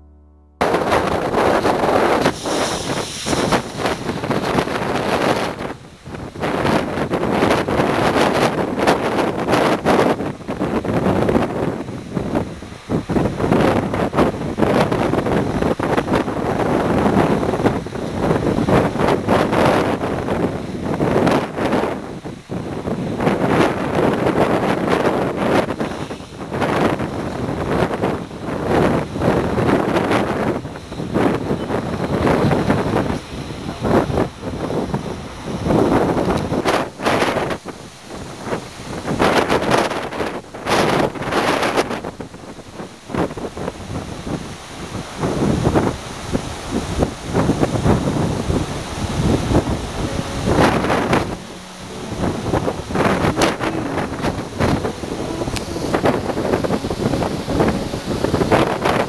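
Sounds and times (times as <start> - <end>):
wind buffeting microphone: 0.6 - 59.0.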